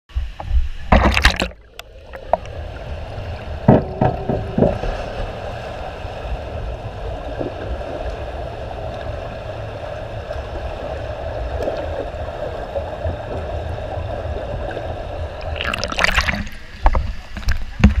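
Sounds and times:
muffled underwater water wash: 0.1 - 18.0
sharp knocks: 3.7 - 5.1.

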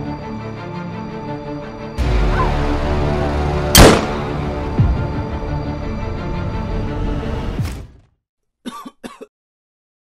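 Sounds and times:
person clearing throat: 8.7 - 9.3.

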